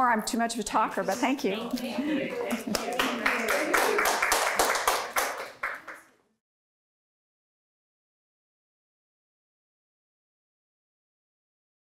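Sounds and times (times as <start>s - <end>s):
audience applauding: 2.2s - 6.1s.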